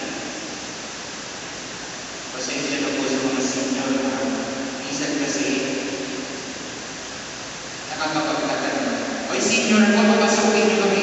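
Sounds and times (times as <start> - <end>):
room background hiss: 0.0 - 11.0.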